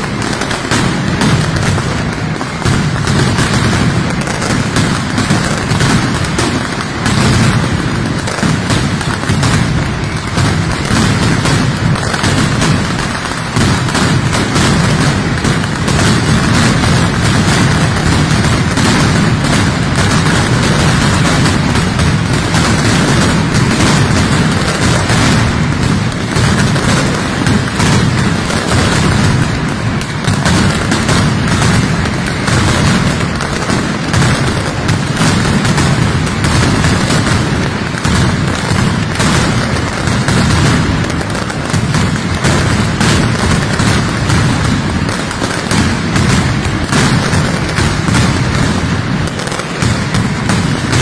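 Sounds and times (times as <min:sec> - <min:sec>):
firecrackers crackling: 0:00.0 - 0:51.0.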